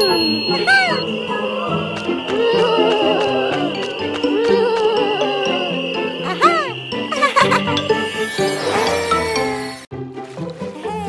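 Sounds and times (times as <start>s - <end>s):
high insect-like drone: 0.0s - 9.9s.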